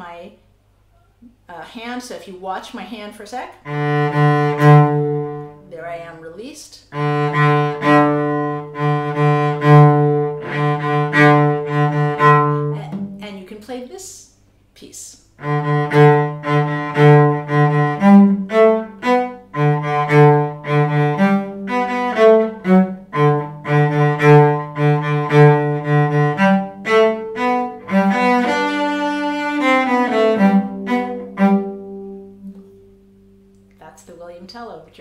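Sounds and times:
solo cello: 3.6 - 5.6, 6.9 - 13.2, 15.4 - 33.2.

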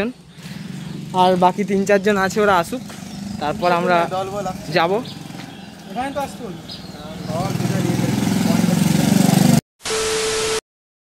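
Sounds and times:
scooter engine running: 0.2 - 9.6.

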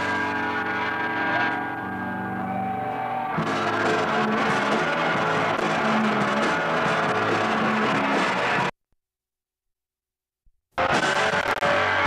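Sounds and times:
electric guitar droning notes: 0.0 - 6.4
rock band playing loudly: 0.0 - 8.7, 10.8 - 12.0
drums and cymbals: 3.3 - 8.7, 10.8 - 12.0.

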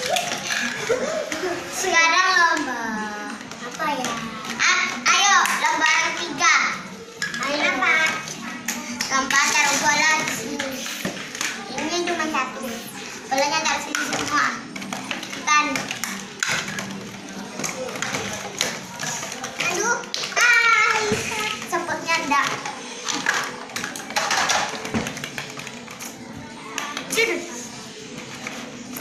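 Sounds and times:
plastic balls knocking together: 7.2 - 27.2
children chattering and shrieking: 16.9 - 24.6.

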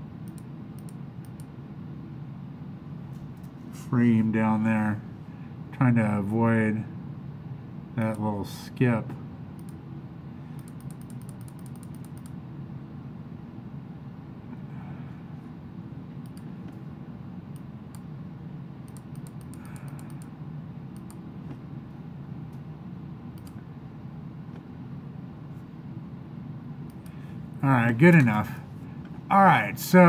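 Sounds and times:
steady low hum: 0.0 - 30.0
computer keyboard typing: 10.6 - 12.4, 18.9 - 20.2.

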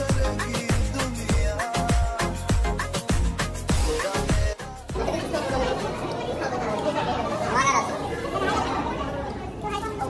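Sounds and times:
indistinct group chatter: 0.0 - 10.0.

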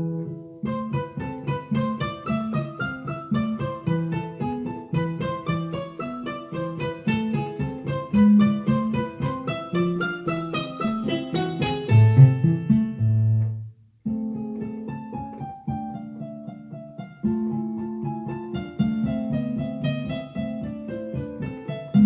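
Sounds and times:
digital piano melody: 0.0 - 22.0.

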